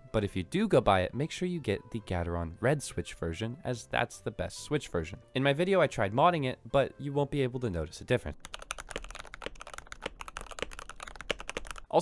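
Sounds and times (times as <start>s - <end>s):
fast typing on mechanical keyboard: 8.4s - 11.9s.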